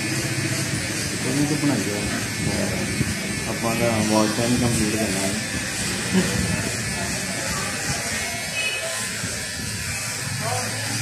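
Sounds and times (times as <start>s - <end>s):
electric hair clipper buzzing: 0.0s - 11.0s.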